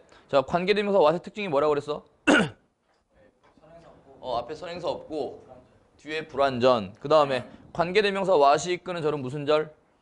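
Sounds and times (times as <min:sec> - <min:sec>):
man clearing his throat: 0:02.2 - 0:02.7.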